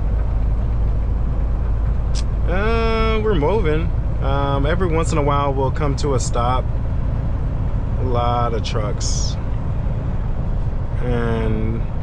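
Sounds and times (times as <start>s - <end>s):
road noise: 0.0s - 12.0s
truck diesel engine rumble: 0.0s - 12.0s.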